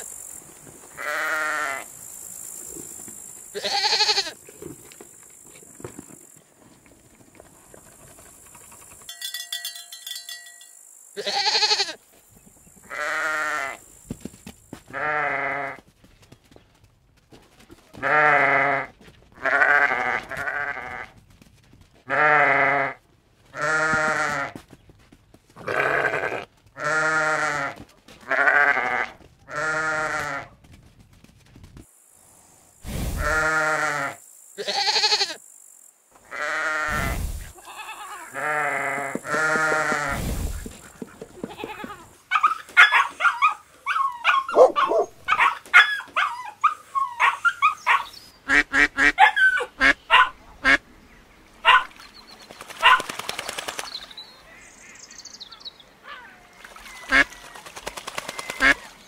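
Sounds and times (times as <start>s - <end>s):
sheep bleating: 1.0s - 1.8s, 3.6s - 4.4s, 11.2s - 12.0s, 12.9s - 13.8s, 14.9s - 15.8s, 17.9s - 21.1s, 22.1s - 24.6s, 25.6s - 30.5s, 33.2s - 35.4s, 36.3s - 40.2s.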